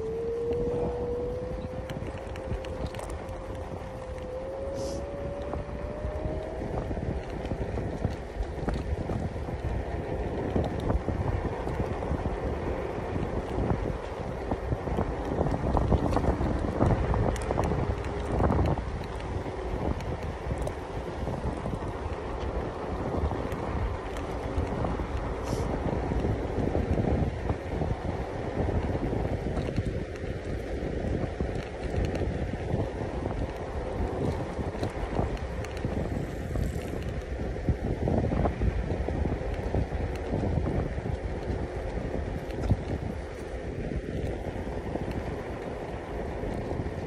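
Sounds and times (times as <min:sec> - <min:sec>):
faint steady whine: 0:00.0 - 0:26.4
tyres rumbling on tarmac: 0:00.0 - 0:47.0
wind buffeting microphone: 0:00.0 - 0:47.0.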